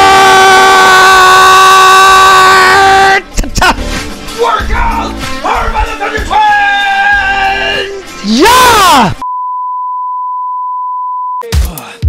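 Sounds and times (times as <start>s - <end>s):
steady electronic beep tone: 9.2s - 11.4s.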